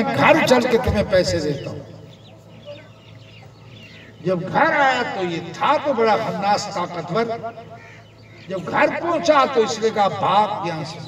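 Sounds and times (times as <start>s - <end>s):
faint bird chirps: 0.8s - 5.2s.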